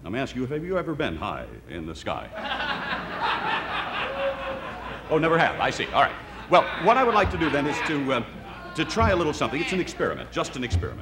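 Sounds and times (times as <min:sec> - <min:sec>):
audience laughter: 0:02.3 - 0:10.4.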